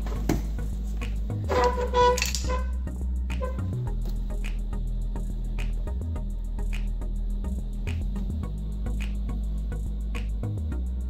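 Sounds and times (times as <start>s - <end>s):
low bass line: 0.0s - 11.0s.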